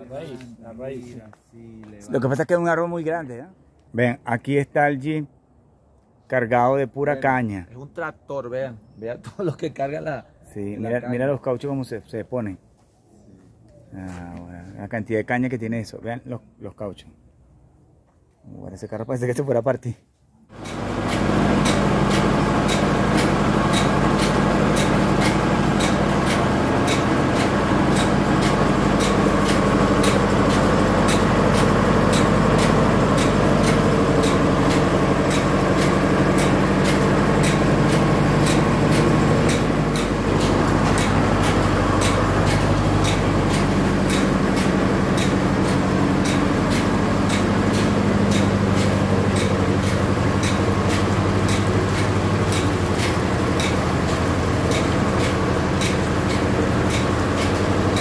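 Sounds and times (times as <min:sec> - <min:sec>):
sugarcane mill mechanical drone: 0:20.5 - 0:58.0
fast regular gear clicking: 0:20.6 - 0:58.0.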